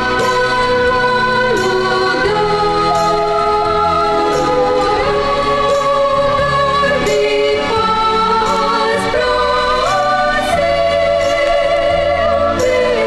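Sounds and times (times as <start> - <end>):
choir singing long notes: 0.0 - 13.0
low musical accompaniment: 0.0 - 13.0.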